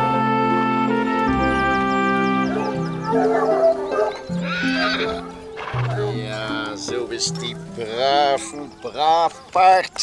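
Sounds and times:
music with sustained horn-like notes: 0.0 - 9.2
horse whinnying: 2.5 - 6.2.

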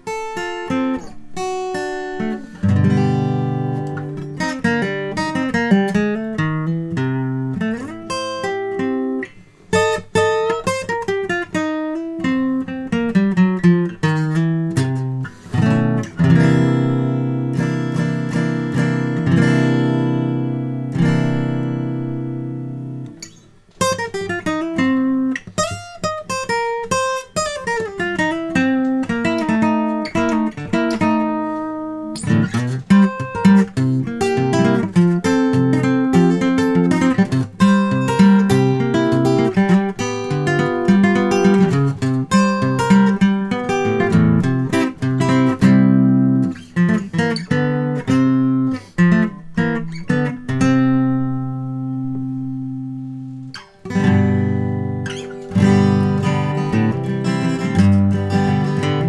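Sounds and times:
acoustic guitar picking: 0.0 - 59.0.

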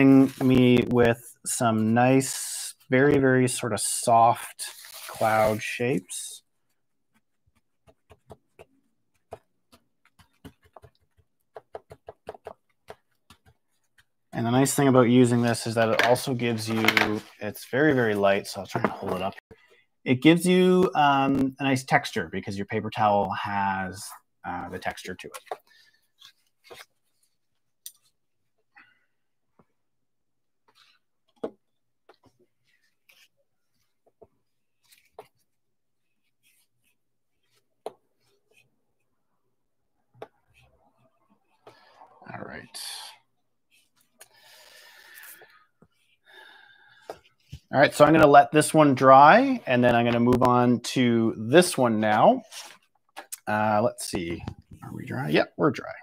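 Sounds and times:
paper towel crackling on paper: 4.5 - 6.3
painting tools tapping and clicking: 7.0 - 14.2.

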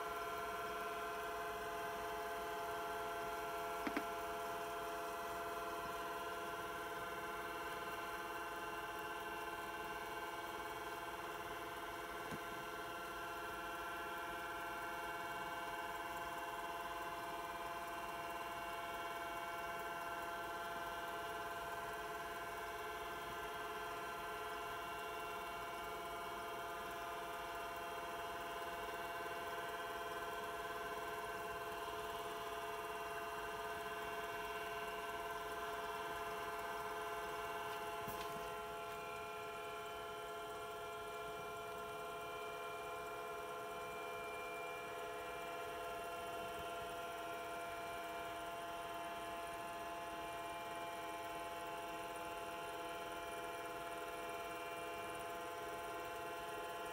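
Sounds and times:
computer fan and drive hum: 0.0 - 56.9.

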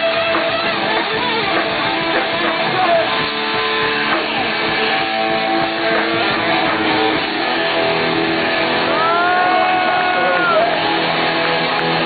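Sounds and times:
distorted electric guitars: 0.0 - 12.0.

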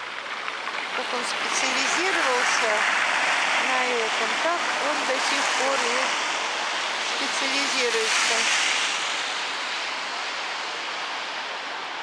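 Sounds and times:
city street noise hiss: 0.0 - 12.0.

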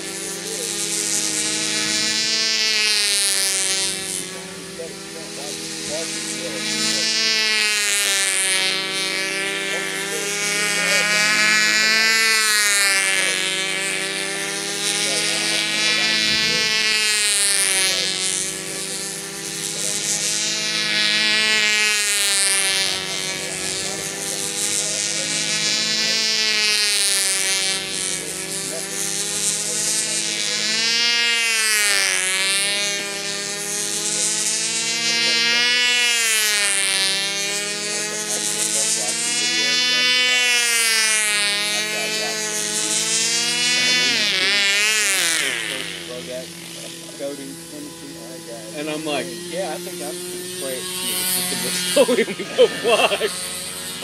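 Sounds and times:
model plane engine buzzing whine: 0.0 - 54.0.

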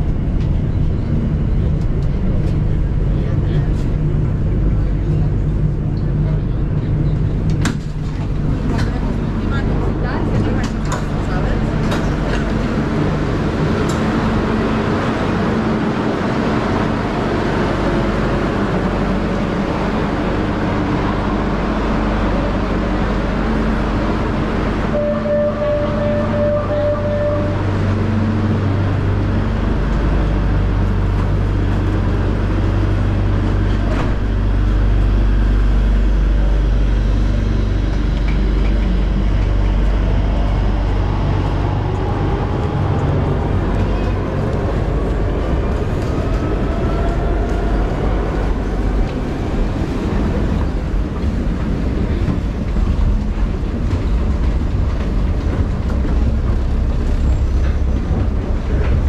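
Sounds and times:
metro train rumbling: 0.0 - 59.0
train whine rising in pitch: 23.5 - 29.3.

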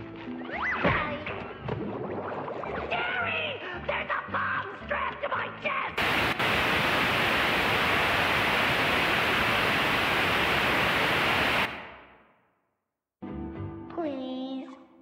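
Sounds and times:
tv static hiss: 6.0 - 12.1.

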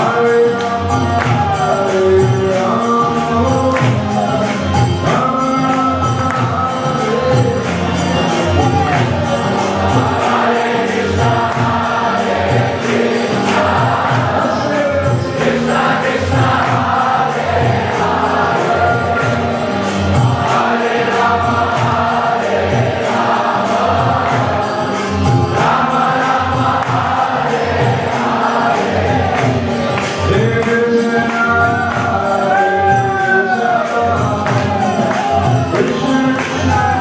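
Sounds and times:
crowd singing a chant: 0.0 - 37.0
drum beat: 0.0 - 37.0.

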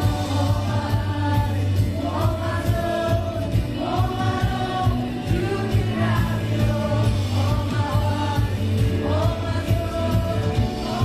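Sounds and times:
bass guitar: 0.0 - 11.0
electric guitar: 0.0 - 11.0
person singing: 0.0 - 11.0
steady drum beat: 0.0 - 11.0.

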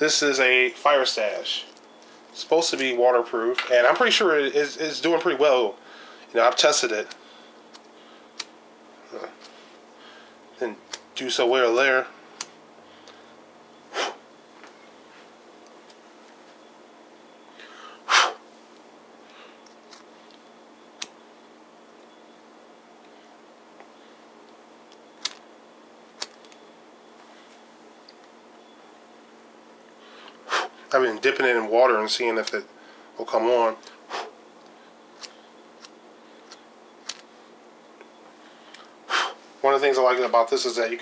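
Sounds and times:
person sneezing: 18.1 - 18.4.

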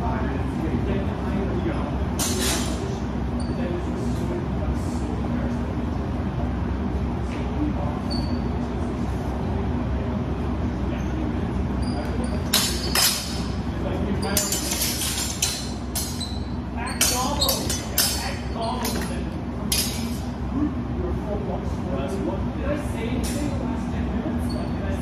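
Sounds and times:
low hum of hall: 0.0 - 25.0
sword blades clashing: 12.5 - 13.5, 14.2 - 16.4, 17.0 - 18.4, 19.7 - 20.3.

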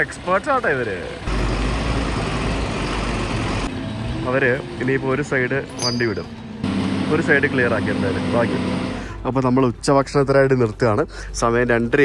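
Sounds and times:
diesel truck engine rumbling: 0.0 - 12.0.

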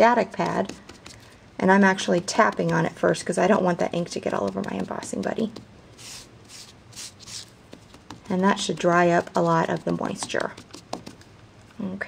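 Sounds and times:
paper towel brushing on cardstock: 4.2 - 11.2.

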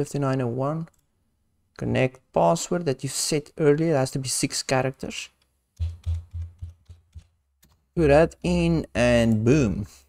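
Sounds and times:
computer keyboard typing: 5.8 - 7.8.

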